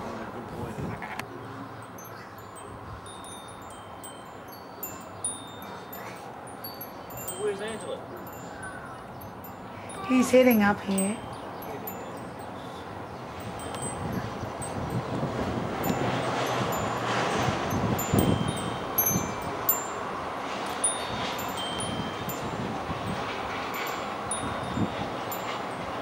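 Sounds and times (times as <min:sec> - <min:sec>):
wind rustling on microphone: 0:00.0 - 0:26.0
high-pitched ringing tones: 0:01.9 - 0:15.2, 0:15.9 - 0:26.0.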